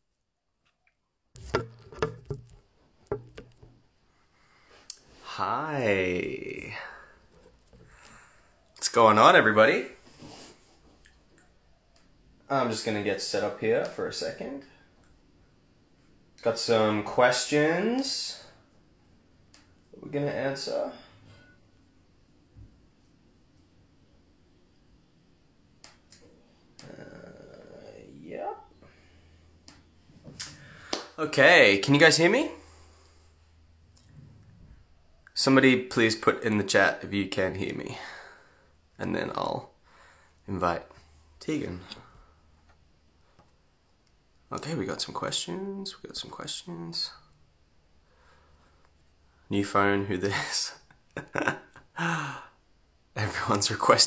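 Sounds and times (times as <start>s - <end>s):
phone handling knocks and clicks: 1.4s - 3.8s
person saying uh: 26.8s - 28.6s.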